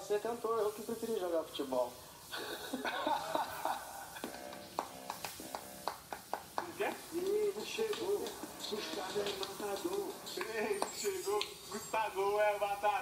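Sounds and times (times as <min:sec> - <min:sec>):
music: 0:04.3 - 0:13.0.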